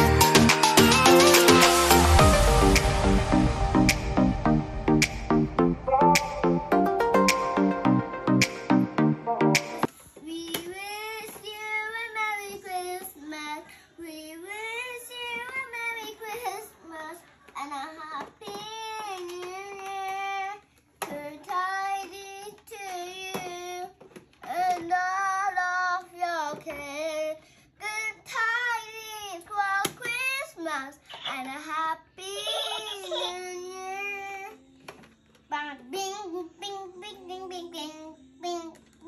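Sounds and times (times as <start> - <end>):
girl singing into a microphone: 10.1 - 34.7.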